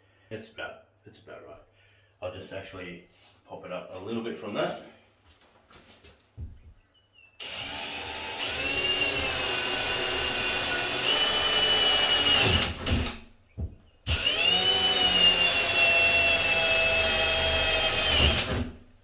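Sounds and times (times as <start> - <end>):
cordless drill boring into drywall: 7.4 - 13.3, 14.0 - 18.9.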